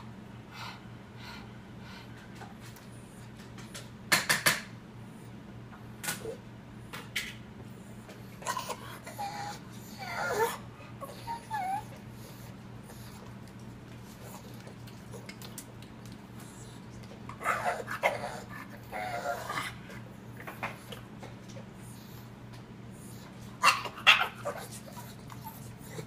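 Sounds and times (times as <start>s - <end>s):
dog whining: 8.2s - 13.3s, 16.4s - 20.9s, 23.0s - 26.0s
dog barking: 23.6s - 24.7s.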